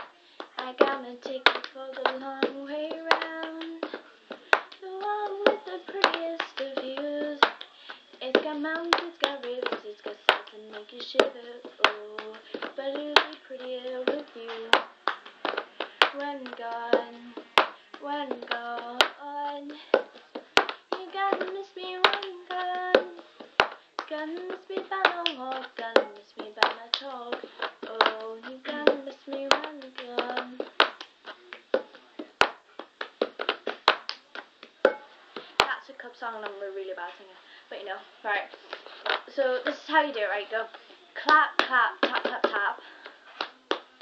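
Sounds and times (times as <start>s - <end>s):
girl singing: 0.0s - 30.9s, 39.3s - 42.9s
hand claps and taps: 0.0s - 35.8s, 38.6s - 39.3s, 41.2s - 44.0s.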